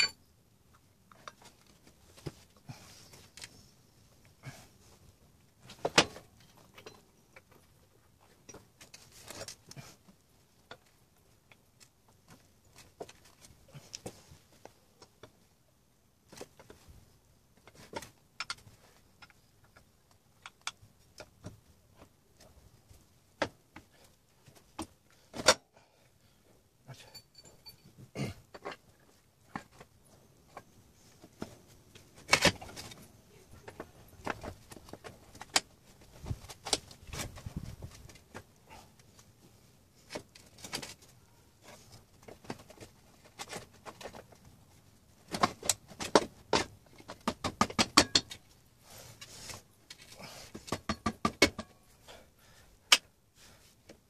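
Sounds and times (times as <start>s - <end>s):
rapid jangling clinks: 27.0s - 28.0s.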